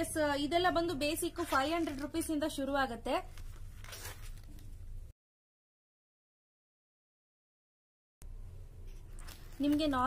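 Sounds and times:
paper page rustle: 1.4 - 2.4, 3.2 - 4.8, 8.9 - 10.0.

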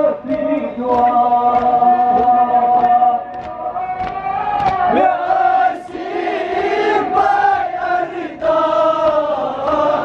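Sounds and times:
man chanting through microphone: 0.0 - 4.2.

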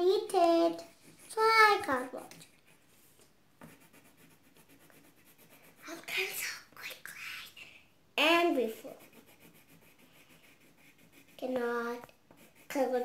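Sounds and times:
pencil scratching on paper: 0.6 - 6.4, 8.6 - 13.0
child whispering: 5.8 - 7.9.

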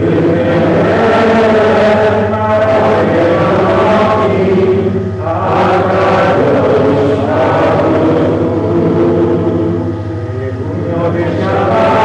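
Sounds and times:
congregation singing: 0.0 - 12.0
steady low hum: 0.0 - 12.0.

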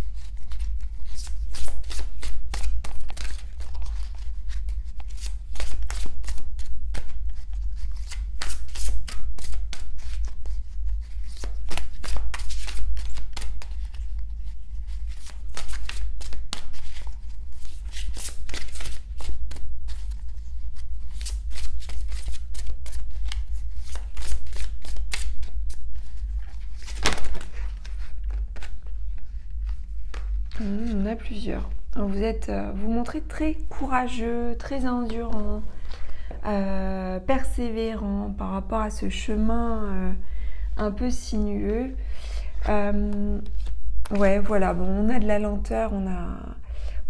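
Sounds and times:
shuffling cards: 0.0 - 31.0
steady low hum: 0.0 - 47.0.

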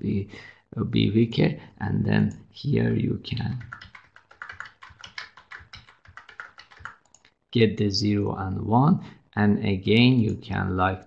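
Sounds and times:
rapid typing on keyboard: 3.4 - 7.2.

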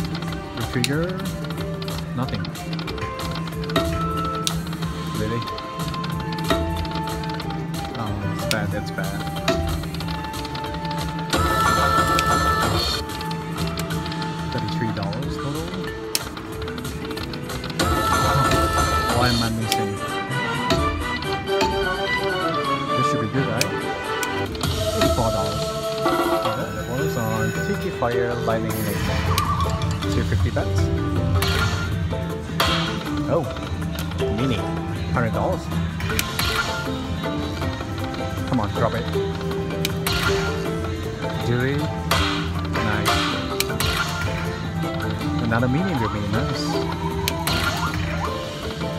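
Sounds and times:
slot machine game music: 0.0 - 48.9.

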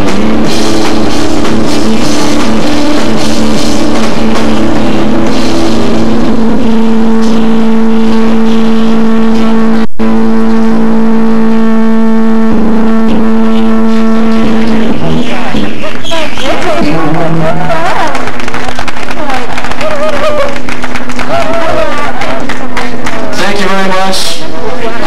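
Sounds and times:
drums: 0.0 - 23.4
distorted electric guitar: 0.0 - 25.0.

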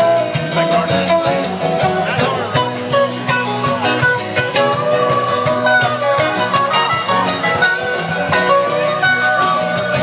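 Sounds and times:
bending electric guitar lead: 0.0 - 10.0
live rock band instrumental: 0.0 - 10.0.

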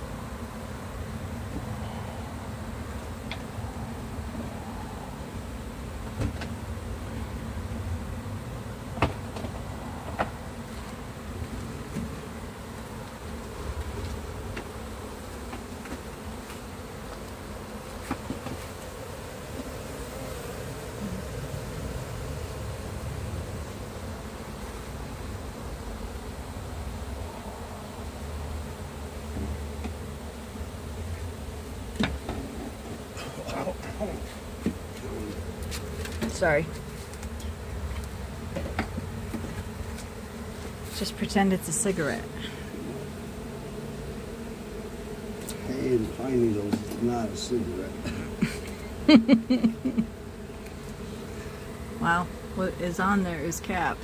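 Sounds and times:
honeybees buzzing: 0.0 - 54.0.

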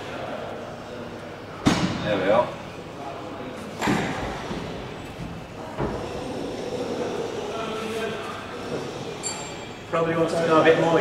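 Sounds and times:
low background noise: 0.0 - 11.0.

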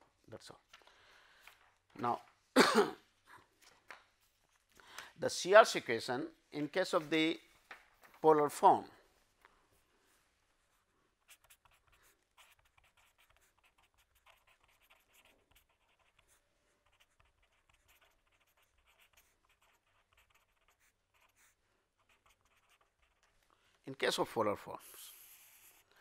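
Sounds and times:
pen scratching on paper: 11.2 - 23.3, 25.0 - 25.9.

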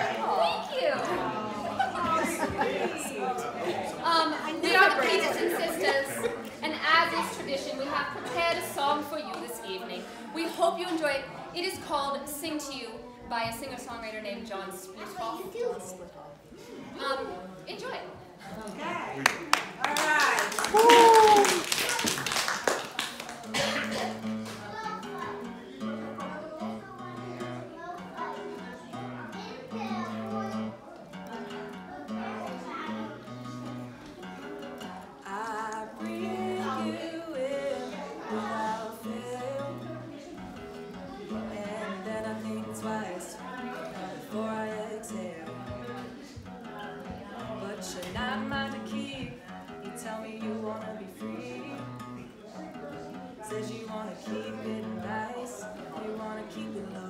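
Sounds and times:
people clapping: 19.1 - 25.0
acoustic guitar strumming: 23.5 - 57.0.

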